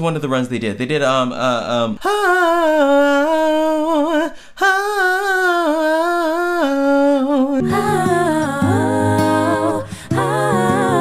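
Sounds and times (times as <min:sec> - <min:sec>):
person singing wordless vocal run: 0:02.0 - 0:11.0
lower voice singing: 0:02.1 - 0:11.0.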